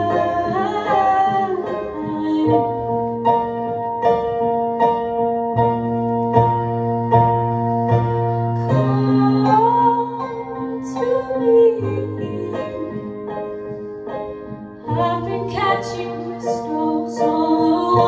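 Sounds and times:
woman singing: 0.0 - 3.1, 8.6 - 13.2, 14.8 - 18.0
keyboard chords: 0.0 - 18.0.

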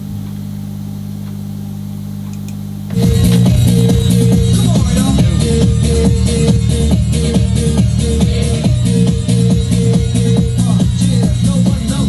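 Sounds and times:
low electrical hum: 0.0 - 6.2
electronic dance music: 2.9 - 12.0.

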